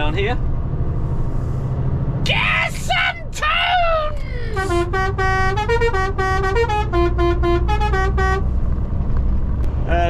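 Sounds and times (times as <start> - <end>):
truck engine running: 0.0 - 10.0
truck musical air horn tune: 4.4 - 8.6.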